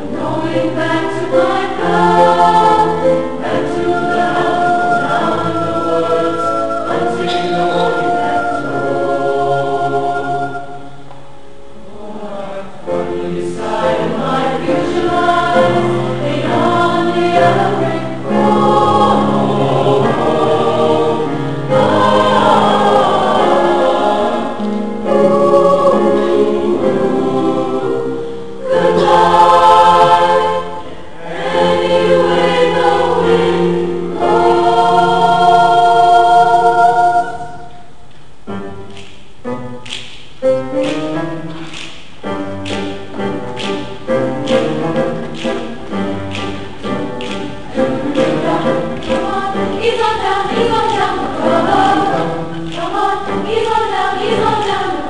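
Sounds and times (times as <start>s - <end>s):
mixed choir singing: 0.0s - 38.0s, 41.6s - 55.0s.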